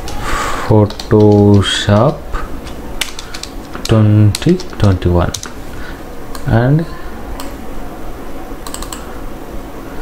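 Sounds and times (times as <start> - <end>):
low background hum: 0.0 - 10.0
keyboard key clicks: 0.8 - 2.2, 8.6 - 9.0.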